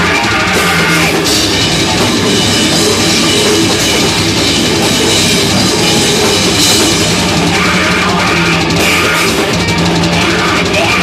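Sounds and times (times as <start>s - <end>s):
drum kit with cymbals: 0.0s - 11.0s
electric guitar: 0.0s - 11.0s
metal band playing live: 0.0s - 11.0s.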